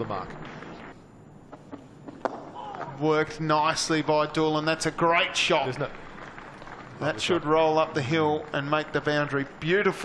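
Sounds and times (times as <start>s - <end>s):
faint background noise: 0.0s - 10.0s
cricket bat striking ball: 0.4s - 3.0s.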